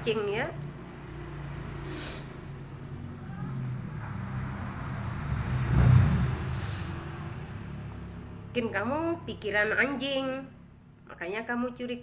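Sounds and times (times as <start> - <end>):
passing vehicle engine hum: 0.0 - 11.0
brief hiss: 1.8 - 2.3.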